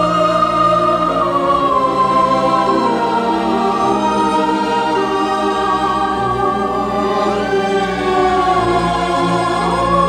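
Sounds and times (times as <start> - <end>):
choir singing held chords: 0.0 - 10.0
orchestral strings: 0.0 - 10.0.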